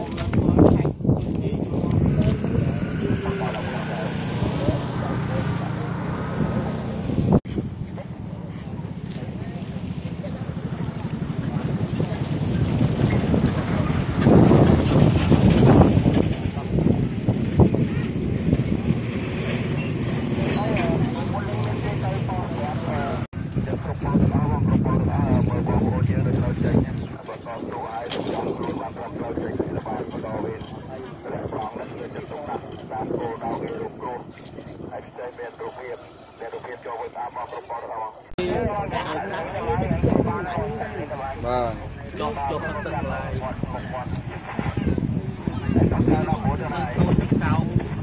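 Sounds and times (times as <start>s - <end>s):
people talking: 0.0s - 7.0s, 7.7s - 48.0s
vehicle engine humming: 1.5s - 48.0s
low rumble: 38.4s - 48.0s.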